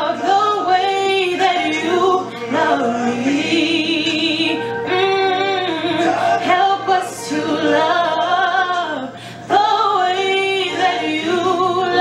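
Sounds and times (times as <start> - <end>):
instrumental backing track: 0.0 - 12.0
woman singing: 0.0 - 12.0.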